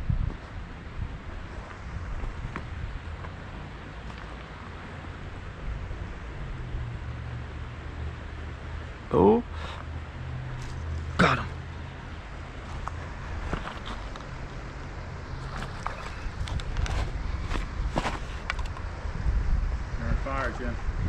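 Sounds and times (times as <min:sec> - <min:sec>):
steady low hum: 0:00.0 - 0:21.0
footsteps on gravel: 0:12.6 - 0:14.3
fishing tackle clicks and knocks: 0:15.4 - 0:18.9.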